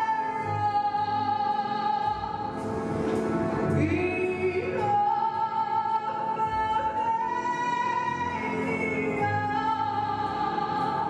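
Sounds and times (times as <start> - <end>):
instrumental accompaniment: 0.0 - 11.0.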